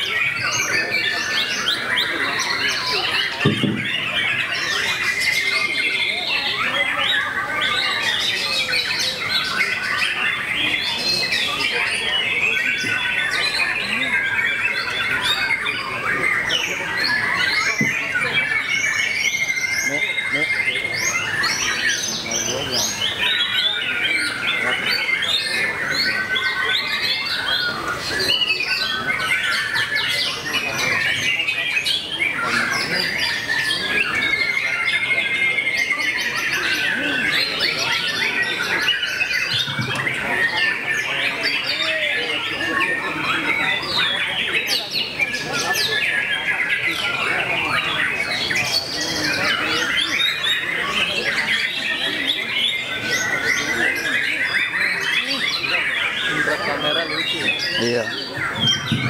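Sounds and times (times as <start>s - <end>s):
other songbirds: 0.0s - 59.0s
songbird whistles and trills: 58.2s - 59.0s.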